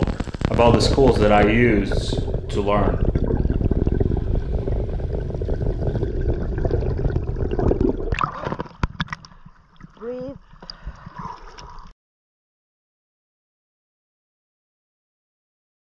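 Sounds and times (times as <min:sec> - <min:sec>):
water rushing and bubbling underwater: 0:00.0 - 0:11.9.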